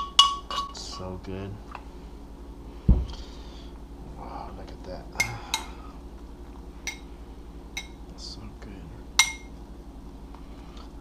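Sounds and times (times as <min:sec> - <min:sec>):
metal spoon clinking on a bowl: 0:00.0 - 0:00.8, 0:06.9 - 0:07.1, 0:07.8 - 0:08.0, 0:09.2 - 0:09.6
low steady hum: 0:00.0 - 0:11.0.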